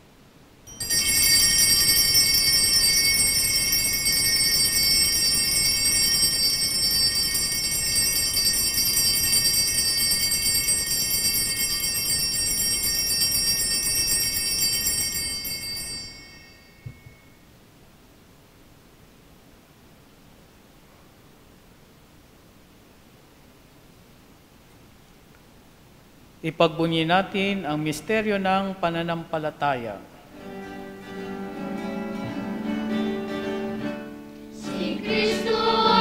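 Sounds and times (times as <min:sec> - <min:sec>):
altar bells ringing: 0:00.7 - 0:17.4, 0:34.8 - 0:36.0.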